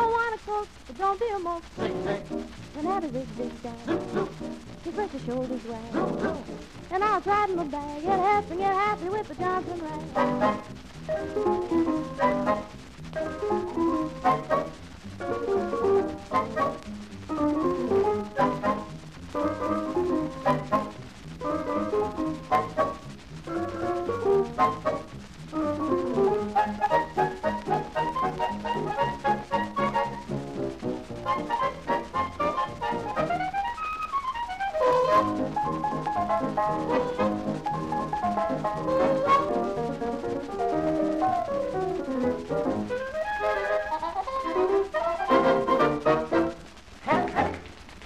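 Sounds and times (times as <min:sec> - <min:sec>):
dance band on old record: 0:00.0 - 0:48.0.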